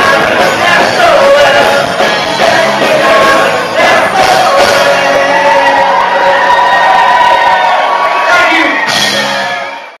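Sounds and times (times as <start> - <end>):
live rock band: 0.0 - 10.0
crowd cheering and whooping: 3.4 - 10.0.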